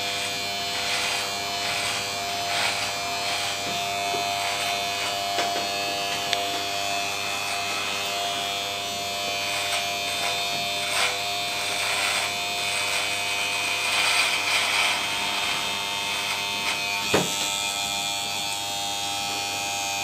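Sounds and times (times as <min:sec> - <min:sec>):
electric beard trimmer running: 0:00.0 - 0:20.0.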